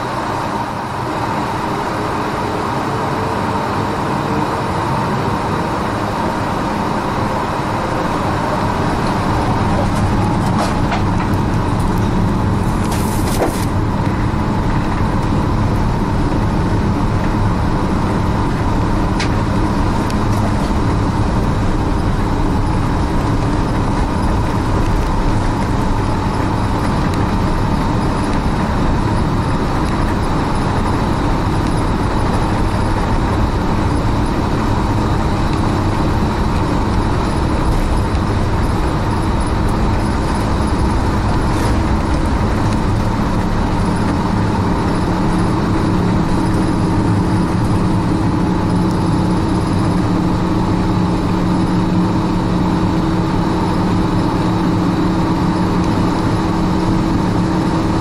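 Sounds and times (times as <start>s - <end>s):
jet engine drone and rumble: 0.0s - 58.0s.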